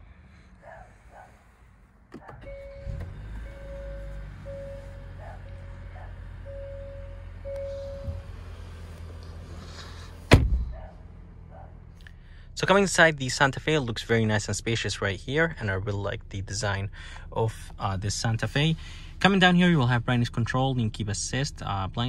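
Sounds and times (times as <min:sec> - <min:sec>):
low steady hum: 0:00.0 - 0:22.0
car door shutting: 0:02.1 - 0:05.7, 0:07.5 - 0:09.2, 0:10.1 - 0:10.9
car warning chime: 0:02.2 - 0:08.7.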